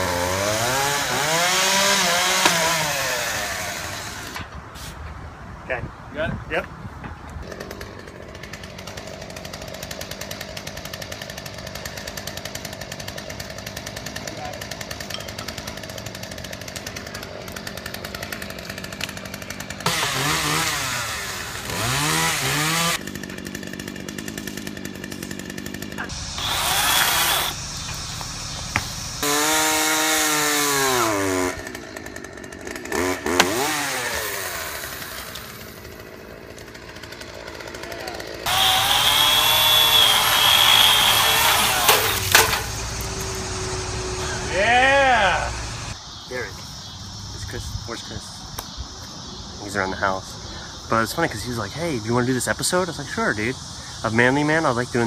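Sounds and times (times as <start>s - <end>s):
electric chainsaw cutting wood: 0.0s - 4.5s, 7.4s - 46.0s.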